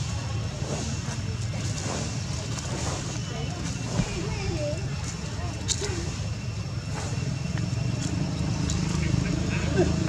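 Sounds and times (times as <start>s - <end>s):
faint wavering voices: 0.0s - 10.0s
low motor hum: 0.0s - 10.0s.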